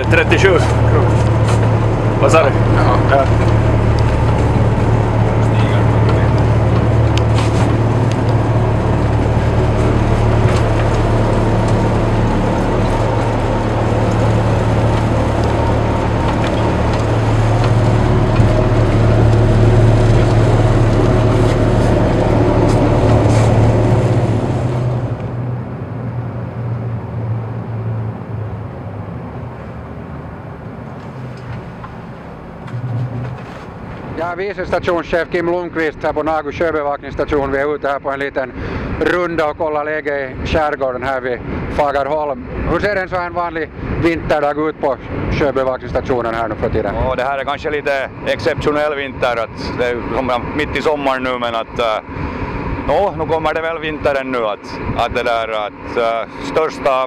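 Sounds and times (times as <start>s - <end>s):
boat diesel engines droning: 0.0s - 57.0s.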